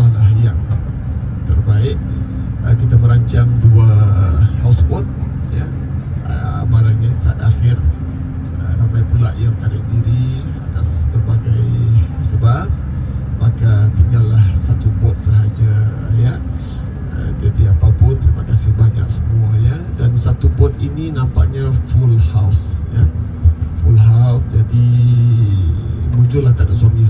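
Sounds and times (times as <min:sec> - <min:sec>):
man talking over loudspeakers: 0:00.0 - 0:00.8, 0:01.4 - 0:27.0
bus rumble: 0:00.0 - 0:27.0.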